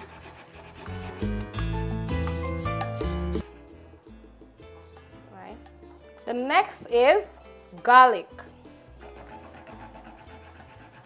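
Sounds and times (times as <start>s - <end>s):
onion rasping on grater: 0.0s - 1.6s, 7.3s - 11.0s
bass-heavy background music: 0.0s - 11.0s.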